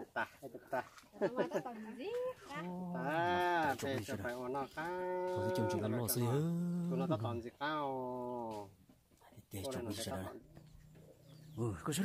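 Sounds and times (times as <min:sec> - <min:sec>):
man talking: 0:03.0 - 0:08.6, 0:09.4 - 0:10.5, 0:11.4 - 0:12.0.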